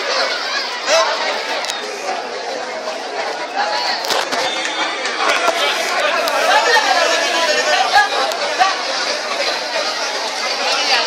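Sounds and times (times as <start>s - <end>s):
men shouting and talking: 0.0s - 11.0s.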